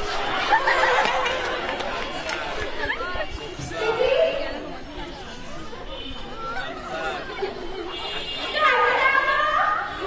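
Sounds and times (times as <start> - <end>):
voices talking over one another: 1.8 - 10.0.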